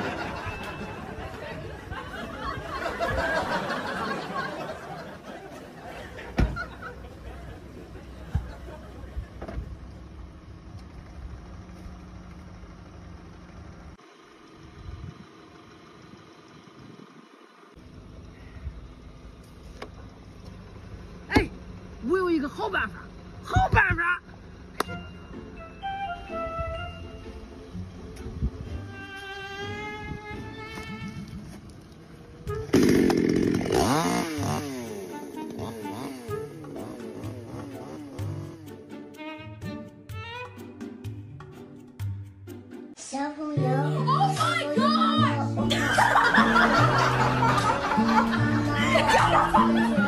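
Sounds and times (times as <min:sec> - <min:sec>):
car engine idling: 0:00.0 - 0:25.6, 0:27.3 - 0:32.7
chainsaw revving: 0:32.6 - 0:38.7.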